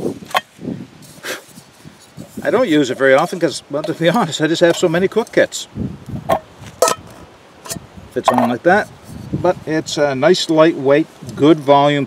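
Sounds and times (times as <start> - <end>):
metal cookware knocks and clinks: 6.8 - 7.0.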